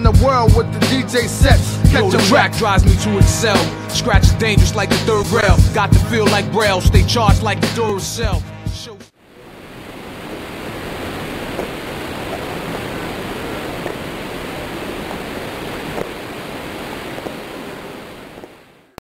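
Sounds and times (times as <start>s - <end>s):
steady rushing noise: 9.2s - 19.0s
faint taps: 15.9s - 16.2s.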